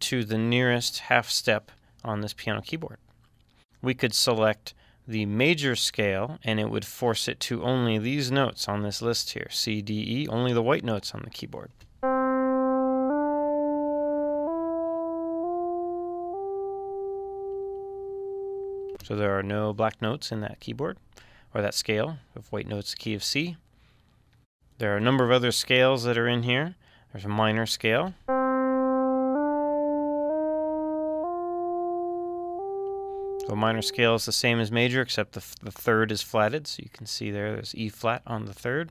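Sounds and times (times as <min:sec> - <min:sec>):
synth tone stepping up in pitch: 0:12.0 - 0:19.0, 0:28.3 - 0:34.1.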